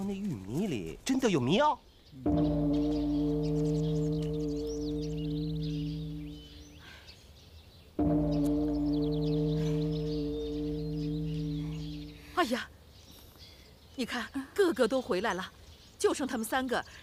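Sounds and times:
birds chirping faintly: 0.0 - 17.0
large temple bell ringing: 2.2 - 6.8, 8.0 - 12.3.

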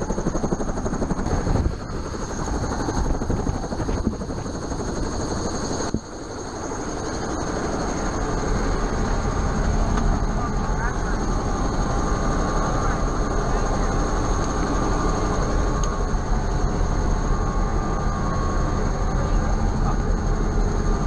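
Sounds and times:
helicopter engine rumble: 0.0 - 21.0
helicopter high whine: 0.0 - 21.0.

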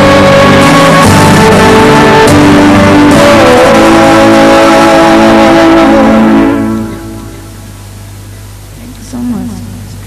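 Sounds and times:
live band held final chord: 0.0 - 7.8
low steady hum: 0.0 - 10.0.

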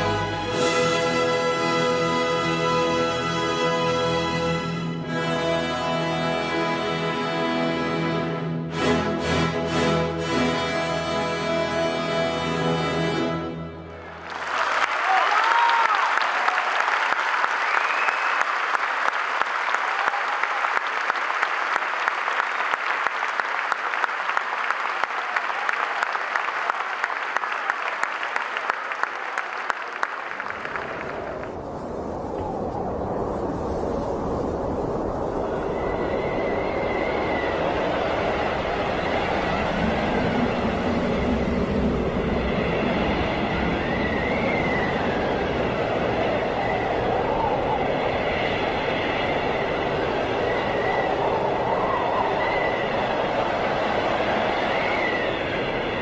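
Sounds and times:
audience applauding: 14.0 - 31.7
low rumbling noise: 30.0 - 56.0.

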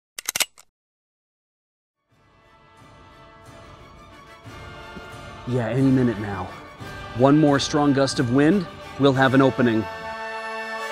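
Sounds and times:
sharp clicks: 0.2 - 0.7.

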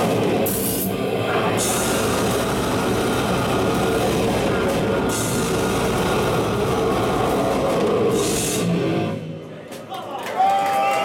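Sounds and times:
fast drumming with cymbals: 0.0 - 9.0
metal band playing live: 0.0 - 9.3.

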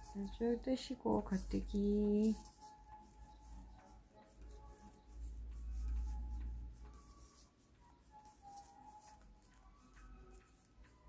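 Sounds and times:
faint background music: 0.0 - 11.0
knitting needles tapping: 0.0 - 11.0.

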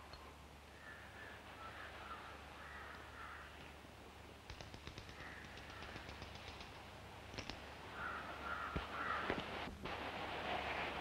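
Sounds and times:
crows cawing: 0.8 - 3.6, 5.0 - 6.2, 7.9 - 9.5
quick light ticks: 4.4 - 7.6.

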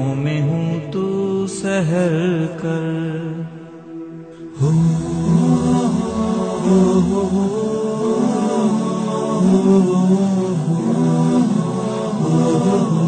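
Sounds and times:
chorus of voices: 0.0 - 13.0
ornamented lead vocal: 0.0 - 13.0
voices chanting sustained drone: 0.0 - 13.0.

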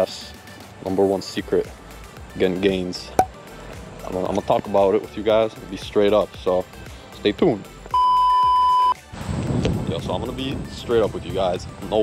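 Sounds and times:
test-card tone beep: 7.9 - 9.0.

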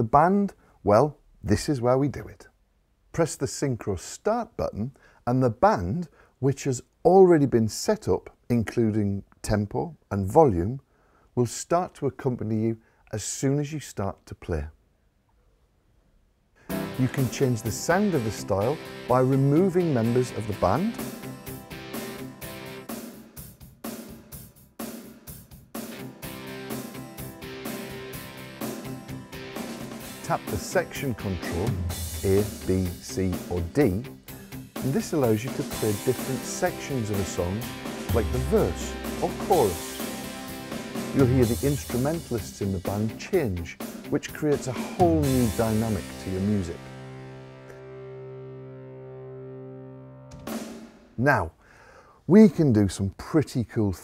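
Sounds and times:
drum kit: 16.7 - 47.2, 50.3 - 51.2
drum hit with cymbal wash: 34.2 - 43.1
digital piano held chord: 36.1 - 42.2
electric guitar and bass: 37.6 - 41.6.

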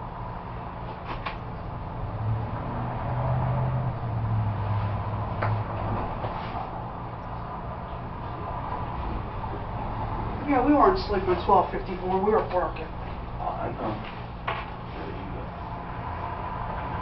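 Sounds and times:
low hum with rushing noise: 0.0 - 17.0.

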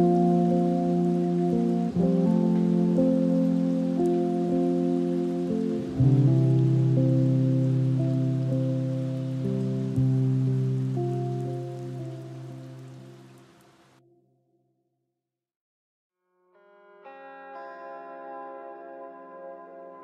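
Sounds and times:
faint rain-like hiss: 0.0 - 14.0.

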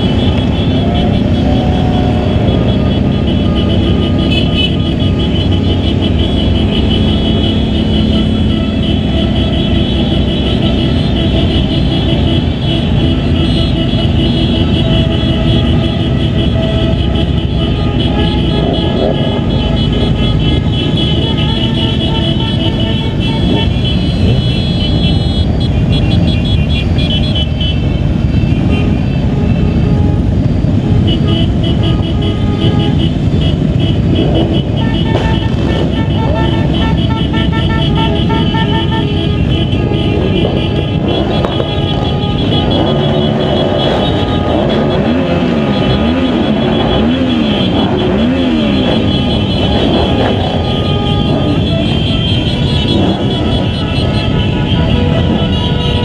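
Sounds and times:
horns honking: 0.0 - 56.0
motorcycle engines rumbling: 0.0 - 56.0.

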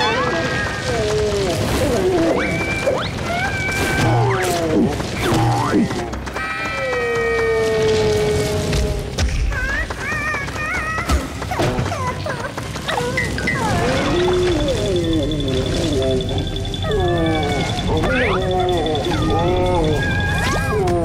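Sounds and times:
cartoon background music: 9.2 - 21.0
squeaky character vocal sounds: 9.6 - 21.0.

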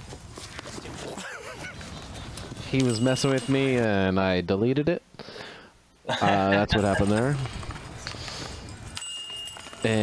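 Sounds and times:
disc striking metal chains: 2.7 - 3.9, 8.2 - 10.0.

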